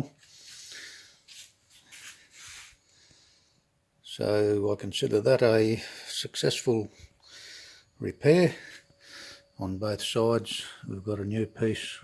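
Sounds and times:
soft breathy puffs: 0:00.2 - 0:03.7, 0:06.8 - 0:09.6.

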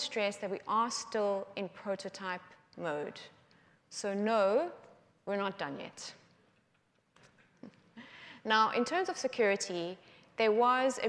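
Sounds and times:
woman speaking: 0:00.0 - 0:03.3, 0:04.0 - 0:06.2, 0:08.4 - 0:11.0.

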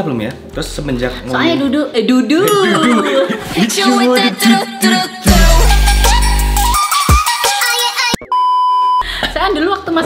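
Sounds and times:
person talking: 0:02.4 - 0:04.6
electronic chirping bleep: 0:08.2 - 0:09.0.

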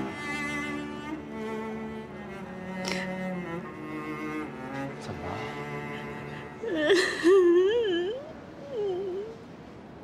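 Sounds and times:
soft background music: 0:00.0 - 0:07.4
woman crying and sobbing: 0:06.4 - 0:09.4.

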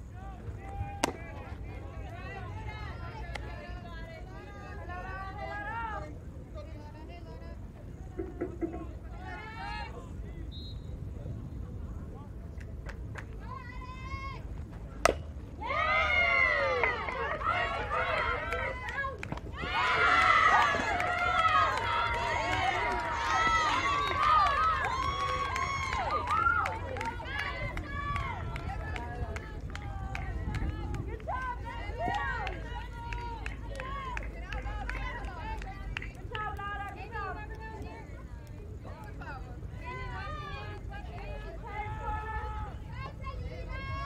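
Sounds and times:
bat hitting ball crack: 0:01.0 - 0:01.4, 0:15.0 - 0:15.3
people shouting and cheering: 0:15.5 - 0:38.0.

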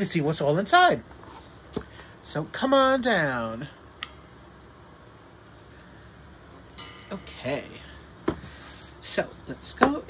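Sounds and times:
soft rustle: 0:08.0 - 0:09.8.

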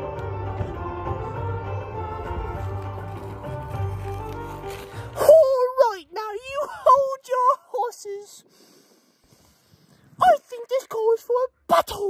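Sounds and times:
breathy exhale: 0:08.4 - 0:10.2.

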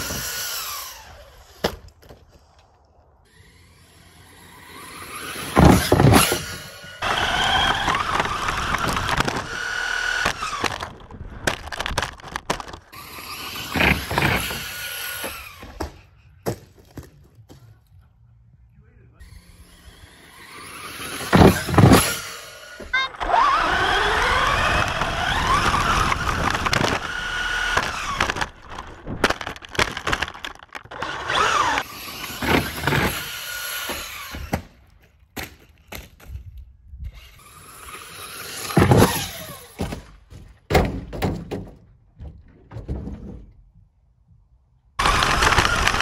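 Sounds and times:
electric motor whining: 0:00.0 - 0:01.6, 0:03.3 - 0:11.0, 0:12.9 - 0:15.8, 0:19.2 - 0:28.8, 0:30.8 - 0:34.5.

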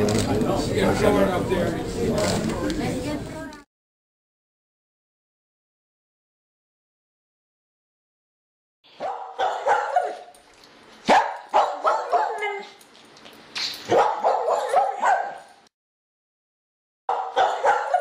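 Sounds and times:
dog barking: 0:09.0 - 0:10.3, 0:11.0 - 0:12.8, 0:13.9 - 0:15.6, 0:17.1 - 0:18.0.

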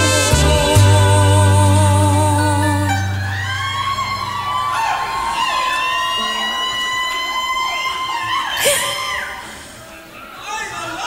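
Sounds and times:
club music bass and beat: 0:00.0 - 0:02.0.

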